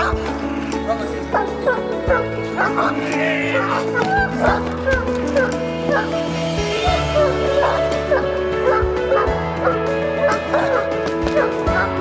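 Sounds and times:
loud background music: 0.0 - 12.0
dog barking aggressively: 1.2 - 6.1, 7.6 - 12.0.

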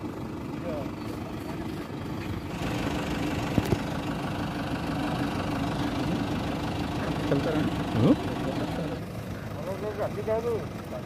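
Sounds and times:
vehicle engine idling: 0.0 - 11.0
people talking: 0.6 - 1.0, 7.0 - 9.0, 9.6 - 11.0.

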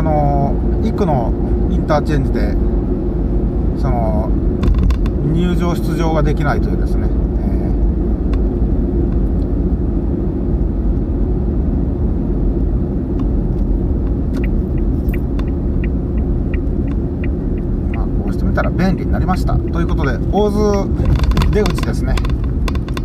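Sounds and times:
car road and engine noise: 0.0 - 23.0
turn signal ticking: 13.1 - 23.0.

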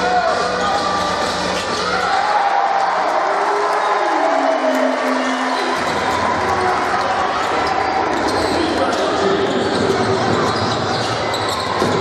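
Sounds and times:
crowd voices and shouts: 0.0 - 12.0.

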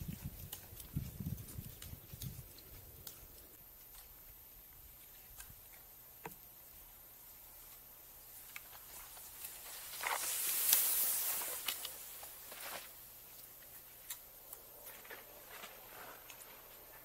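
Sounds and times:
ski poles crunching in snow: 7.6 - 17.0
skis swishing over snow: 8.4 - 14.0, 14.8 - 17.0.

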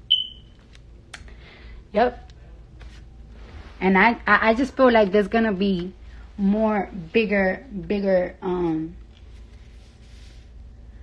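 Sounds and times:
high electronic beep: 0.0 - 0.5.

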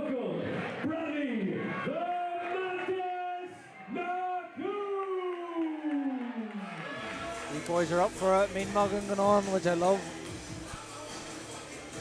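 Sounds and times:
announcer calling over loudspeaker: 7.6 - 10.0.

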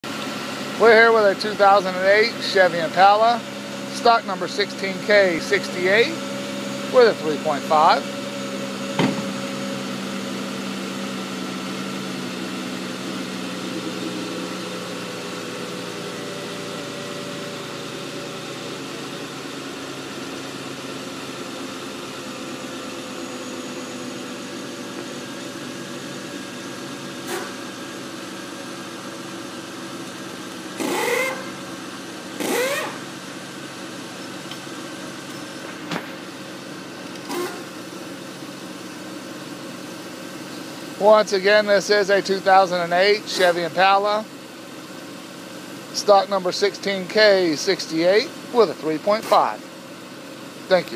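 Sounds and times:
engine idling: 0.0 - 50.9.

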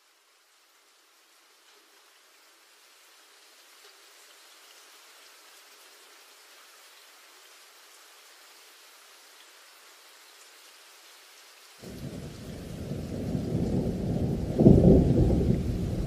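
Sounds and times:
light rain hissing: 0.0 - 16.0.

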